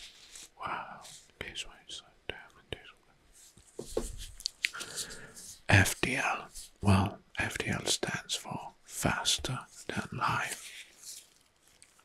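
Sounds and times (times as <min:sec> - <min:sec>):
man whispering: 0:00.6 - 0:03.0, 0:04.7 - 0:11.2.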